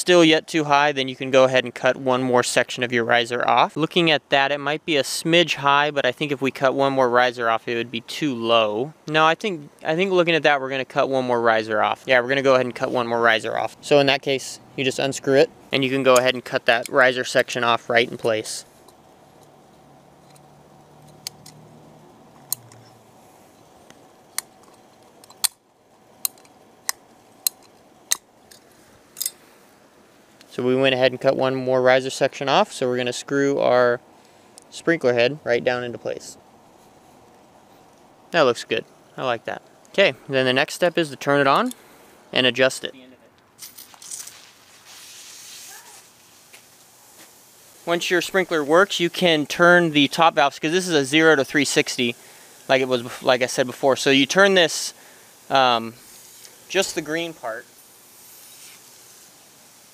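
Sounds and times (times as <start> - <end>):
sprinkler spraying water hiss: 0.0 - 59.9
sprinkler clicks and spatters: 11.9 - 29.5, 43.5 - 59.9.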